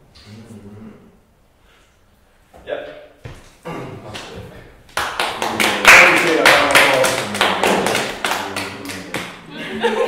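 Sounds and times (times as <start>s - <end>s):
group clapping: 4.1s - 10.0s.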